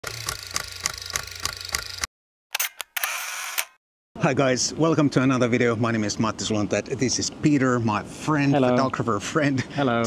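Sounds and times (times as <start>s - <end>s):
rapid camera clicking: 0.0s - 3.8s
camera shutter clicks: 0.1s - 3.8s.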